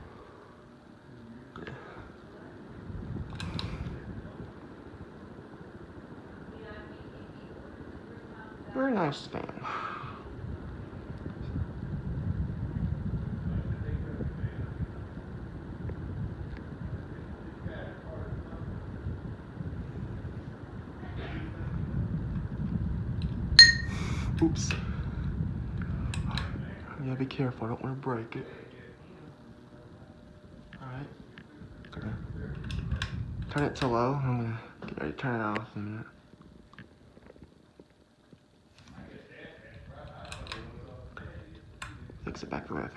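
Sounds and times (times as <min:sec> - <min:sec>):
ceiling fan air rumbling: 0:00.0 - 0:42.9
glass shade ringing clink: 0:23.6 - 0:24.1.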